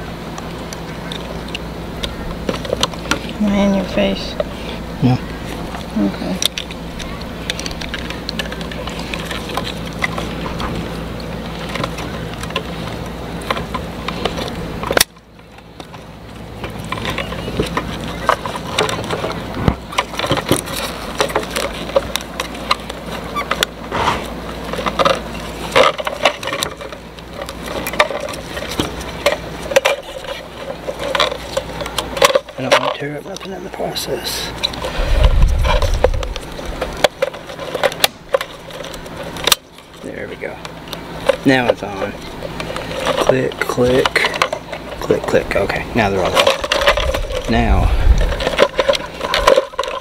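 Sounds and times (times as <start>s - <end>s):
steady low hum: 0.0s - 50.0s
plastic parts clicking and rustling: 5.4s - 23.8s, 24.5s - 50.0s.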